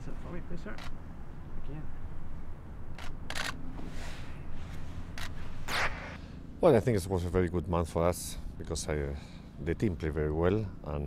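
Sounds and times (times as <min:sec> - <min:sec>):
camera shutter clicks: 0:00.8 - 0:01.0, 0:02.9 - 0:03.6.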